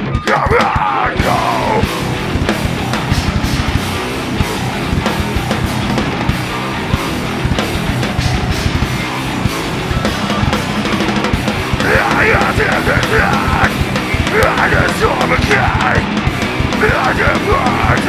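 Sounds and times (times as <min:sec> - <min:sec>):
distorted electric guitar: 0:00.0 - 0:18.0
drum kit beat: 0:00.0 - 0:18.0
electric bass: 0:00.0 - 0:18.0.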